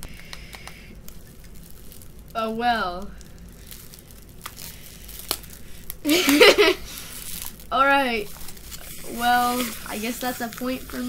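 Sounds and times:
plastic wrap crinkling: 0.0 - 11.0.

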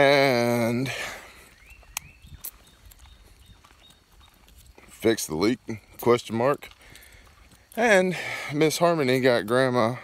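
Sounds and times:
footsteps on woodland path: 0.0 - 10.0.

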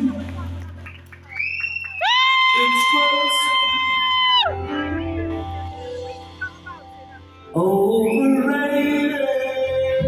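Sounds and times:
band playing: 2.0 - 10.0.

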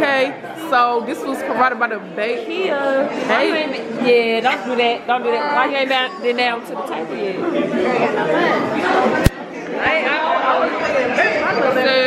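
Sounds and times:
crowd talking in a hall: 0.0 - 12.0.

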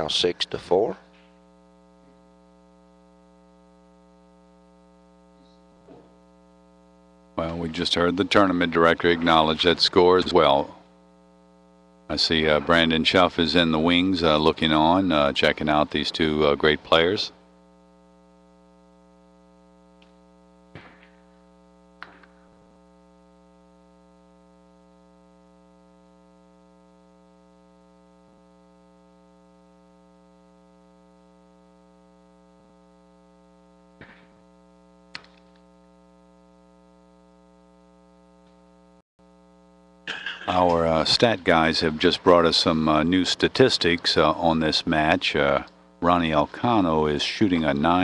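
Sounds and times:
faint mains hum: 0.0 - 48.0.

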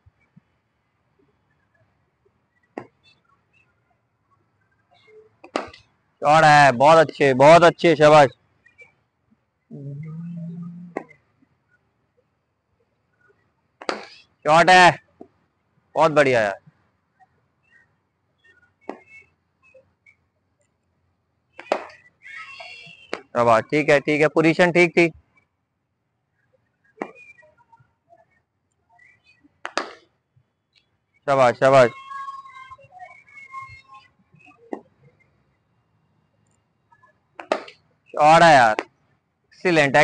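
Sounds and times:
low tone with overtones: 9.7 - 11.1
cricket bat striking ball: 37.4 - 37.7.

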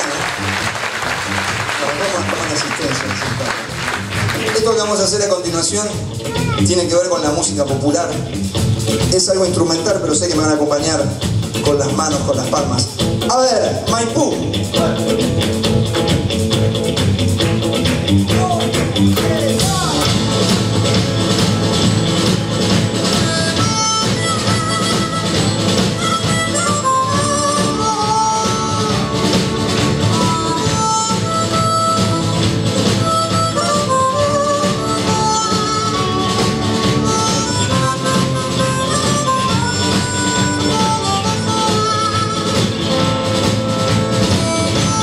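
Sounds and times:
bass guitar: 0.0 - 45.0
drum kit: 0.0 - 45.0
electric guitar: 0.0 - 45.0
harmonica melody: 14.4 - 45.0.

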